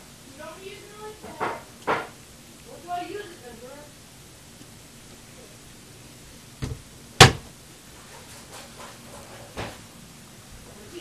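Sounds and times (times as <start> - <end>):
cabinet door clapping shut: 6.6 - 7.5
cabinet door light knock: 6.6 - 7.5.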